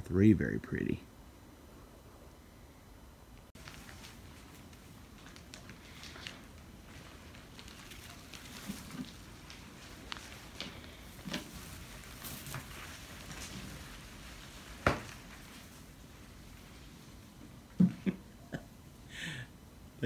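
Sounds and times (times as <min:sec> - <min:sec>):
turkeys scratching in straw: 0:03.6 - 0:17.2.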